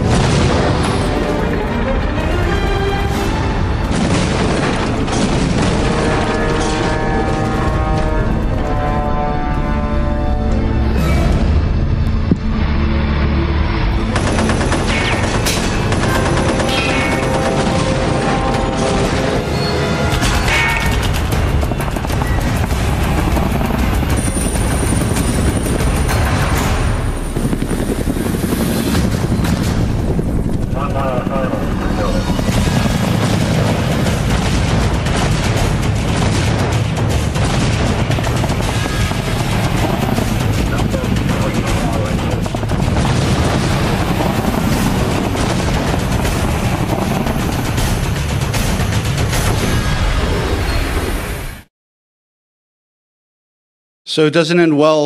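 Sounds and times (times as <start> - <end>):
action music: 0.0 - 51.4
rumble of vehicles and battle: 0.0 - 51.7
helicopter rotor noise: 13.9 - 49.3.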